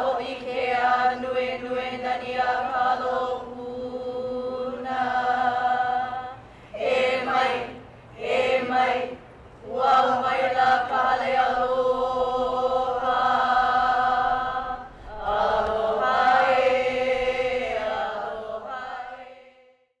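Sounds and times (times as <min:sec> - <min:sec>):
sung chant in long tones: 0:00.0 - 0:20.0.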